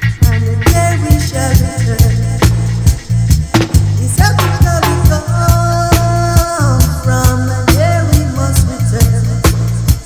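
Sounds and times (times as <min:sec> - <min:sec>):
reggae music: 0:00.0 - 0:10.0.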